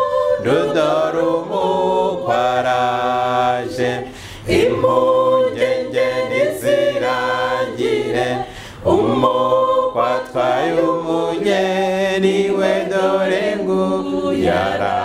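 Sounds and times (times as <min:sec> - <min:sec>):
choir singing a cappella: 0:00.0 - 0:15.0.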